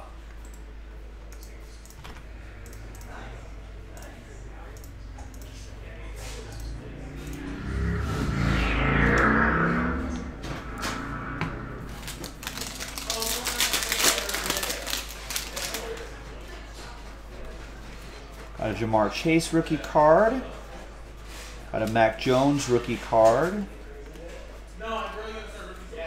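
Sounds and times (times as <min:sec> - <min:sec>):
falling pitch tone: 0:06.7 - 0:13.2
plastic wrapper tearing and crinkling: 0:12.2 - 0:16.0.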